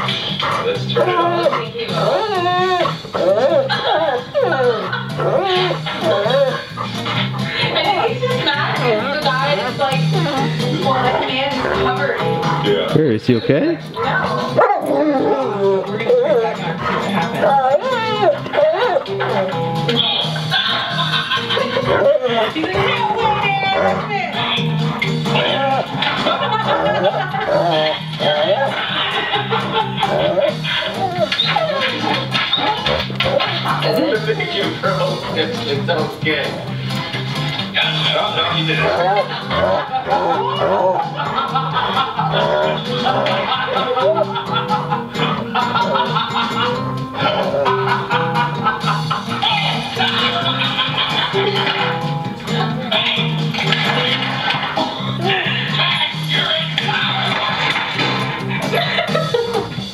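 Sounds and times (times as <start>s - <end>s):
dog whining: 0.0s - 12.5s, 14.0s - 20.8s, 21.4s - 35.5s, 38.8s - 41.2s
voices: 0.0s - 57.8s
background music with bass line: 0.0s - 59.9s.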